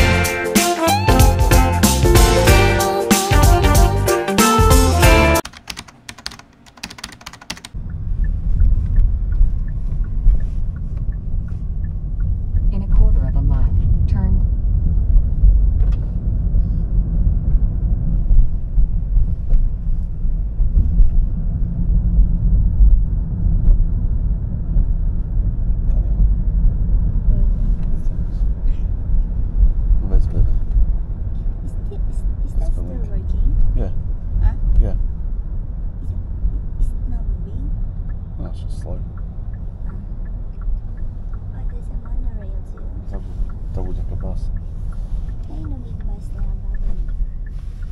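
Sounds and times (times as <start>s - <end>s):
car interior driving rumble: 7.7s - 47.9s.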